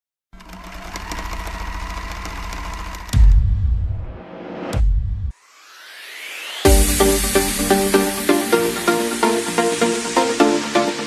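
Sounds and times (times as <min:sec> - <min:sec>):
rapid mechanical clatter: 0:00.4 - 0:03.5
deep bass boom: 0:03.1 - 0:05.3.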